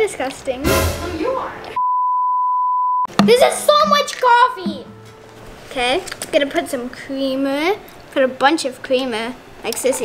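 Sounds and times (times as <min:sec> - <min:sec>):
steady test tone beep: 0:01.8 - 0:03.1.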